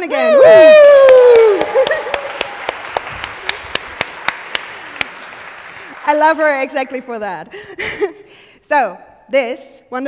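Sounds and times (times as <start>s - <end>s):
audience applause: 0.4s - 7.3s
sharp close claps: 1.0s - 7.2s.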